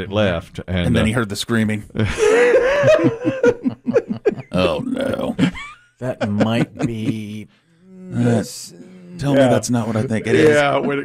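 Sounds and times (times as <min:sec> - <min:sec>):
men laughing hard: 0:02.0 - 0:07.4, 0:09.8 - 0:11.0.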